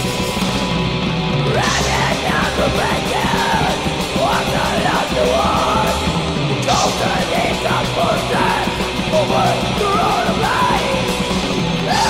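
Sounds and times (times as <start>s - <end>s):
metal band playing: 0.0s - 12.0s
harsh yelled vocals: 1.4s - 12.0s.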